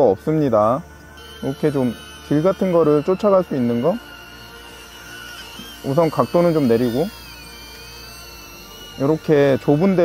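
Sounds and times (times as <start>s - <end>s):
drone propellers whining: 0.0s - 10.0s.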